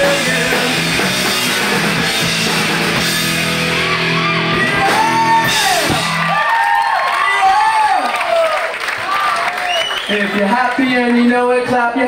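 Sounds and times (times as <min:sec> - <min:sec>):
punk rock band playing live: 0:00.0 - 0:06.4.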